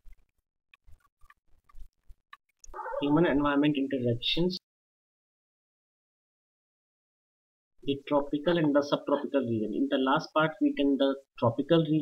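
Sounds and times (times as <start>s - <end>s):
man speaking: 3.0s - 4.6s, 7.8s - 12.0s.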